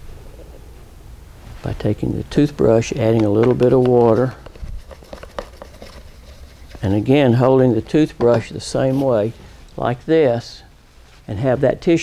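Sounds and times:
plastic container handling: 2.7 - 7.2, 8.1 - 9.2.

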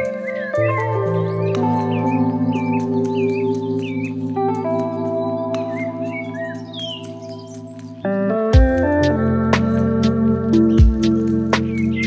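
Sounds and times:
ambient synth chords: 0.0 - 12.0
birds chirping: 0.0 - 12.0.

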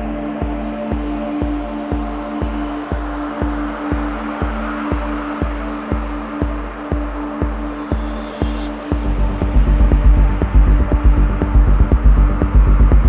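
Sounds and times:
electronic music: 0.0 - 13.0.

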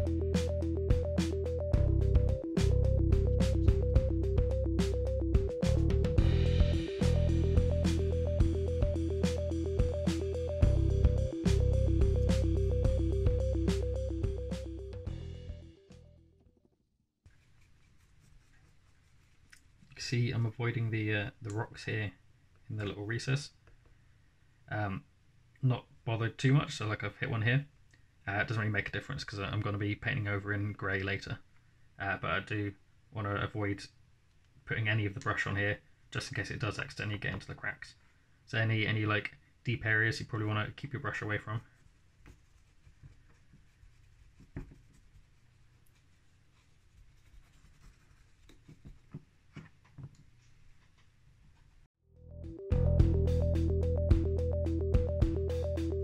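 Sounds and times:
paintbrush scratching on stone: 17.3 - 19.8, 41.7 - 49.3.

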